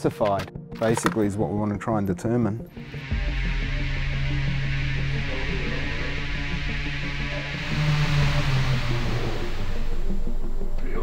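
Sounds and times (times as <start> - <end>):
electronic music: 2.7 - 11.0
motor spinning propeller: 2.8 - 11.0.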